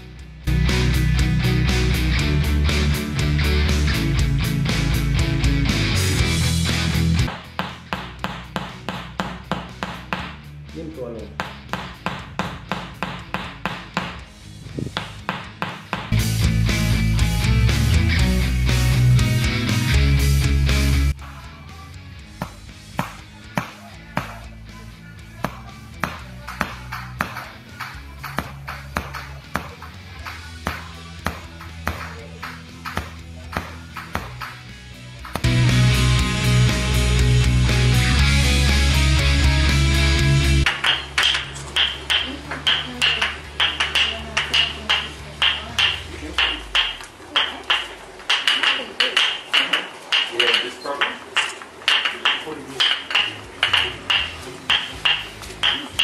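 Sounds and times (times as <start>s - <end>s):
loud rock music with guitars: 0.0s - 7.6s, 16.1s - 23.5s, 34.6s - 40.7s
wooden mallet tapping wooden wedge: 40.7s - 56.0s.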